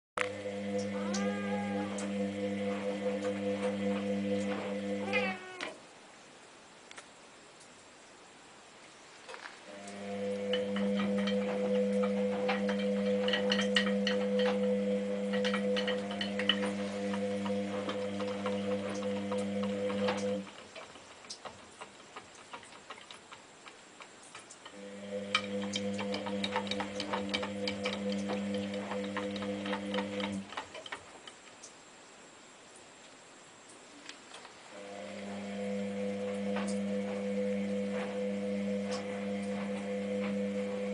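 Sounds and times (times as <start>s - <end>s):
steady hum: 0.2s - 9.0s, 9.6s - 40.9s
cat licking metal drum: 15.3s - 31.4s.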